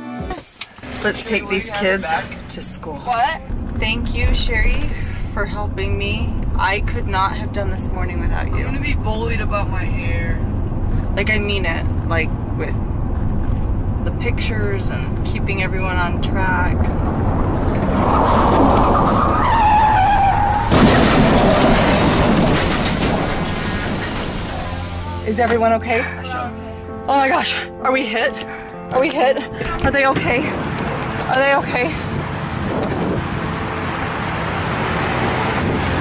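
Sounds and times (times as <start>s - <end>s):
freeway traffic road noise: 0.4s - 36.0s
tyres screeching in a skid: 17.0s - 25.5s.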